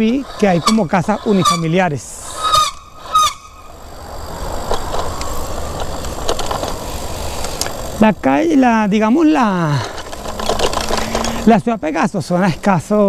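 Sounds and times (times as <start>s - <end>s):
bicycle tyre road noise: 0.0s - 13.0s
wind rumbling on microphone: 2.3s - 9.2s.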